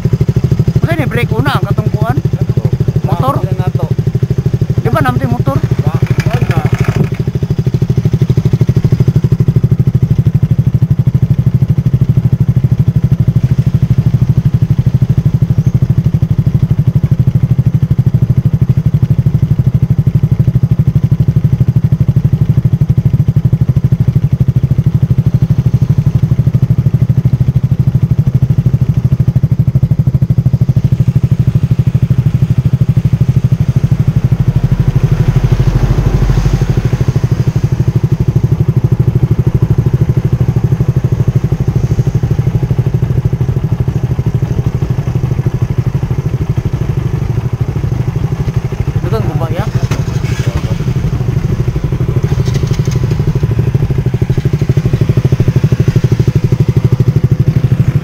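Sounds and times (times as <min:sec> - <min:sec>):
deep engine rumble: 0:00.0 - 0:58.0
motorcycle engine idling: 0:00.0 - 0:58.0.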